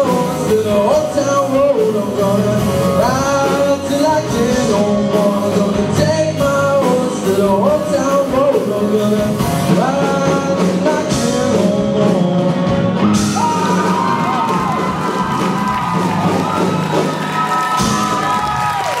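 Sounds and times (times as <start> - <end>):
live rock band playing: 0.0 - 19.0
audience cheering and whooping: 13.2 - 19.0.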